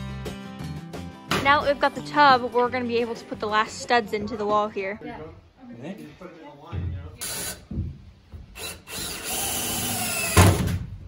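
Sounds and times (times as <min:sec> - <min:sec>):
cordless drill driving screws: 0:08.6 - 0:10.7.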